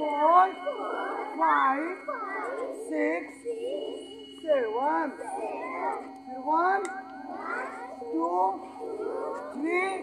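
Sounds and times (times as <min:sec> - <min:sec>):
children shouting together: 0:00.6 - 0:04.2, 0:05.1 - 0:10.0.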